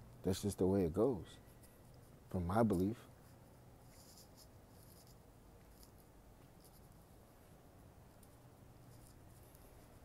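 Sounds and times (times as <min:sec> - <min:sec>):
faint scratchy rustles: 0:01.2 - 0:10.0.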